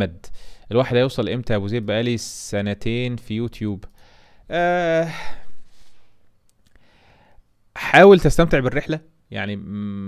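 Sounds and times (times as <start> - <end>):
faint breaths: 3.9 - 4.5, 5.1 - 7.6
man sighing: 4.1 - 6.1.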